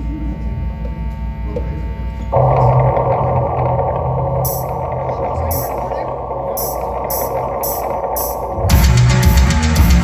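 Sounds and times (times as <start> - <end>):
distorted bass and keyboard drone: 0.0 - 10.0
high hissing beat: 2.3 - 10.0.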